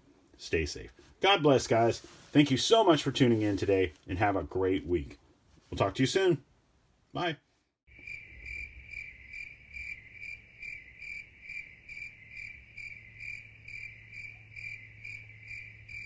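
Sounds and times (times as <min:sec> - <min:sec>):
cricket chirping: 0:07.9 - 0:16.0.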